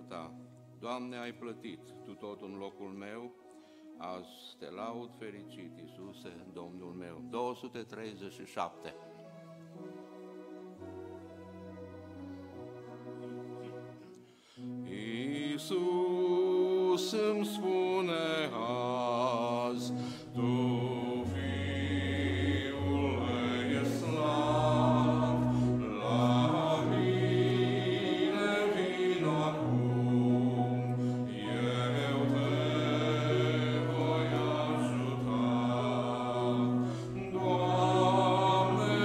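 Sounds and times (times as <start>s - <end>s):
grand piano: 4.9s - 39.0s
congregation singing a hymn: 14.6s - 39.0s.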